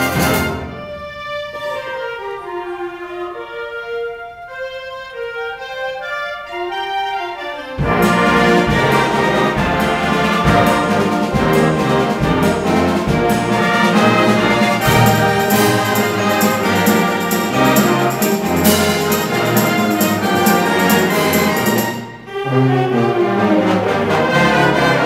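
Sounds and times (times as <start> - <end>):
wind band playing loudly: 0.0 - 25.0
percussion strokes: 7.8 - 22.3.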